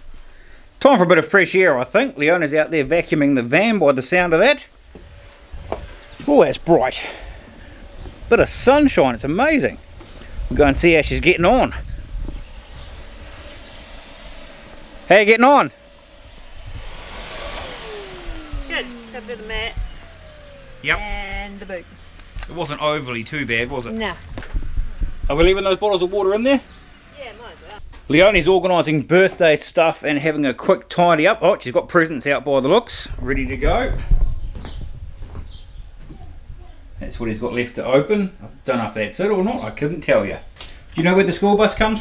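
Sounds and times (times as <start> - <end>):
handling rumble of camera: 4.7 - 15.1, 15.8 - 27.1, 33.1 - 37.0
vacuum cleaner running: 4.8 - 27.8
soft footsteps: 34.5 - 36.4.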